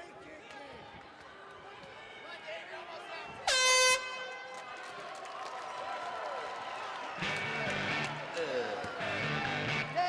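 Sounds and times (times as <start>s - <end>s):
crowd shouting: 7.1s - 10.0s.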